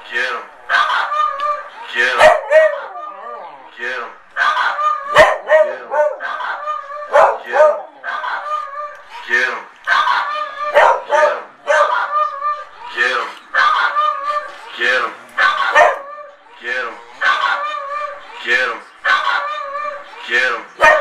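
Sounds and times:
small dog barking: 0:02.2 - 0:03.1, 0:04.4 - 0:08.6, 0:09.9 - 0:12.3, 0:15.4 - 0:16.1, 0:19.0 - 0:19.6, 0:20.8 - 0:21.0.

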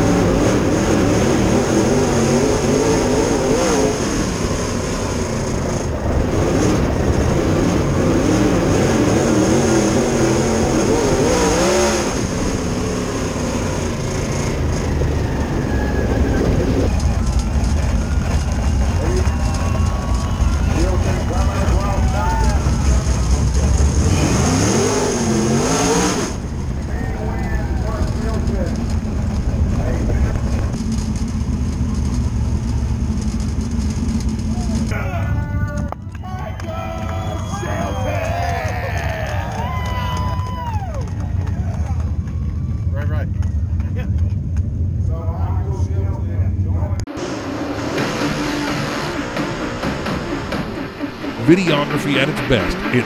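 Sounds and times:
race car engine revving: 0:00.0 - 0:35.0, 0:46.8 - 0:53.0
people shouting and cheering: 0:14.5 - 0:25.0, 0:26.7 - 0:28.6, 0:34.5 - 0:44.2, 0:51.1 - 0:53.0
background music: 0:47.5 - 0:53.0.

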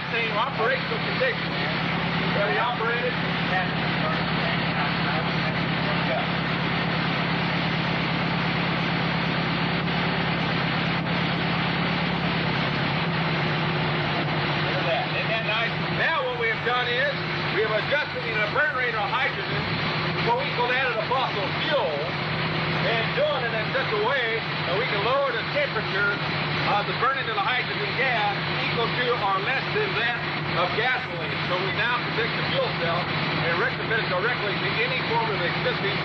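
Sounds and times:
buggy engine idling: 0:00.0 - 0:36.0.

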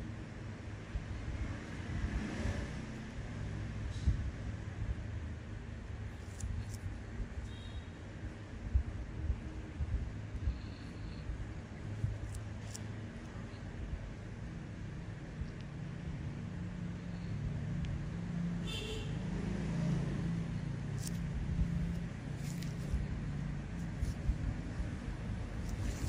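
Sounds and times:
road traffic rumble: 0:00.0 - 0:26.0.

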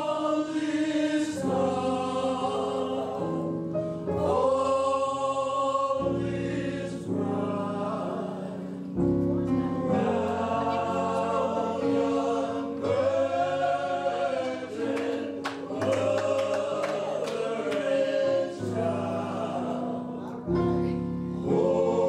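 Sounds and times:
men singing gospel: 0:00.0 - 0:22.0.

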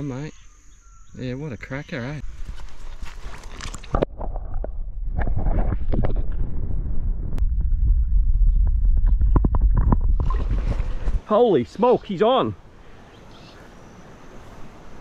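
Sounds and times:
muffled underwater water rumble: 0:04.0 - 0:11.3.

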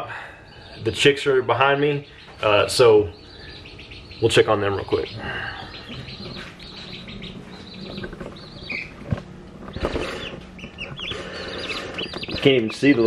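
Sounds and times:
chicks peeping: 0:00.0 - 0:13.0.

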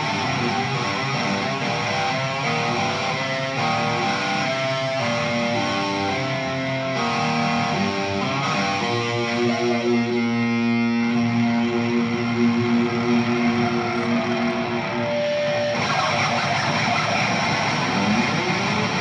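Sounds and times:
electric guitar solo: 0:00.0 - 0:19.0.

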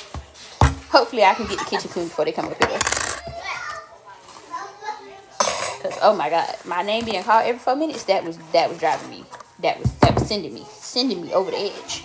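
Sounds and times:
distant children playing: 0:03.1 - 0:05.9, 0:10.4 - 0:12.0.

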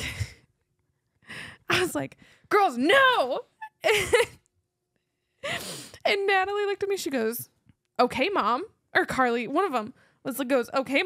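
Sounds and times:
person laughing: 0:03.7 - 0:04.4.

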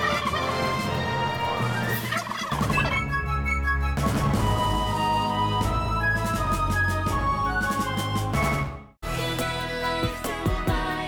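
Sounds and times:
background music: 0:00.0 - 0:11.0
turkey gobbling: 0:01.9 - 0:02.9.

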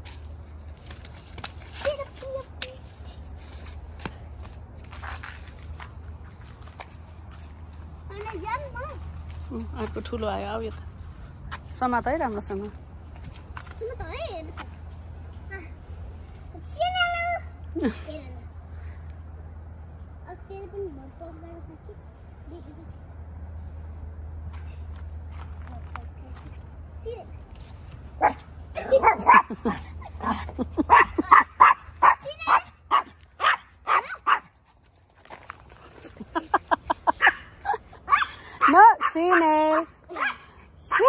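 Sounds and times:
small dog barking: 0:28.2 - 0:29.5, 0:30.9 - 0:34.5, 0:38.1 - 0:41.0.

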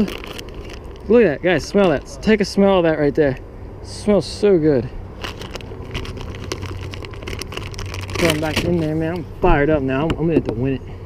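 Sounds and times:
plastic bag crinkling: 0:00.0 - 0:01.1, 0:05.1 - 0:09.2
low steady hum: 0:00.0 - 0:11.0.

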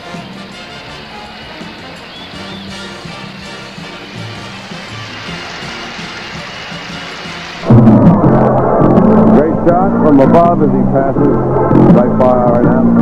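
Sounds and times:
theme music playing: 0:00.0 - 0:13.0.

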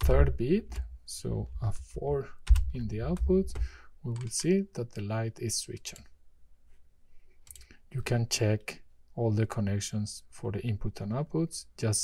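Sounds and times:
person speaking: 0:00.0 - 0:06.2, 0:07.5 - 0:12.0.

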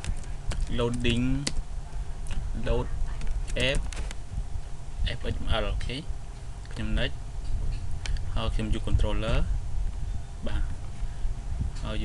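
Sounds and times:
person speaking: 0:00.0 - 0:01.6, 0:02.3 - 0:04.0
steady low hum: 0:00.0 - 0:12.0.

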